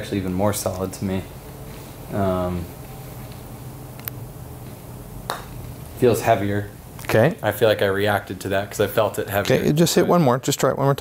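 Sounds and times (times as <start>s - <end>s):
low steady hum: 0.0s - 11.0s
putter striking golf ball: 5.3s - 5.7s.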